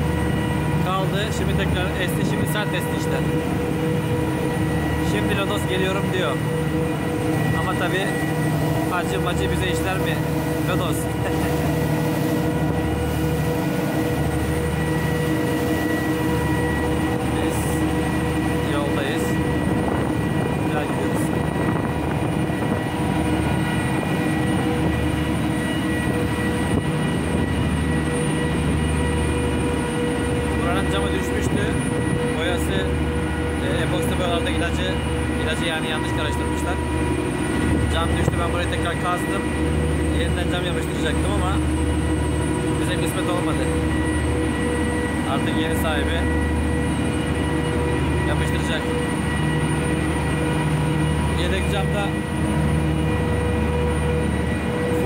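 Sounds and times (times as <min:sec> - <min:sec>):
boat diesel engines droning: 0:00.0 - 0:55.0
wind buffeting microphone: 0:19.2 - 0:29.6.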